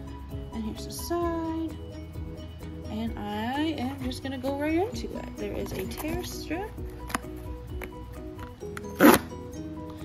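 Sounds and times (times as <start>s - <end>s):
cardboard tear strip ripping: 8.8s - 9.3s.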